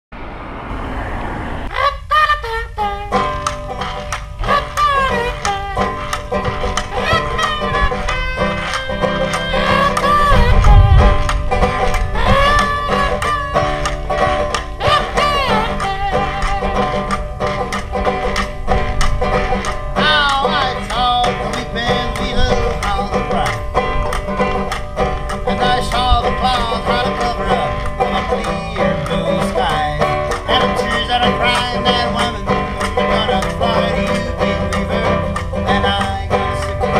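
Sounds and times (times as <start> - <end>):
plucked banjo bluegrass instrumental: 1.7 - 36.9
brief rushing noise: 10.0 - 12.9.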